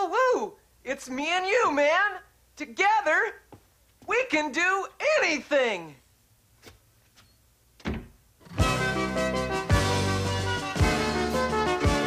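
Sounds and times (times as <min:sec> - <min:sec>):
wardrobe doors shutting: 0:07.8 - 0:08.6
instrumental music with chords: 0:08.5 - 0:12.0.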